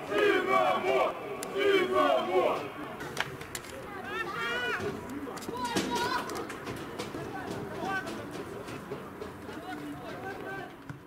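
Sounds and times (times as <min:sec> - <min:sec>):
players shouting: 0:00.0 - 0:03.0, 0:03.8 - 0:10.8.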